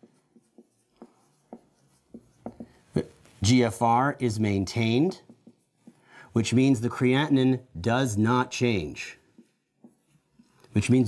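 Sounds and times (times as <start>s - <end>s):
marker writing on whiteboard: 0.0s - 7.5s, 8.2s - 11.0s.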